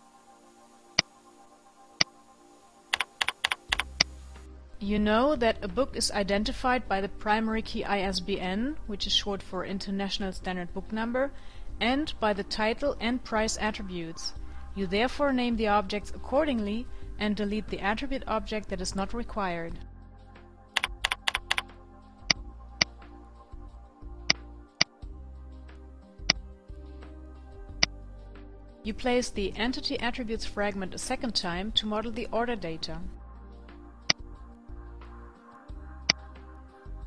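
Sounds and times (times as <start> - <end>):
faint background music: 0.0 - 37.0
computer keyboard typing: 2.9 - 4.1, 20.8 - 21.7
sharp click: 2.9 - 4.1, 20.8 - 21.7.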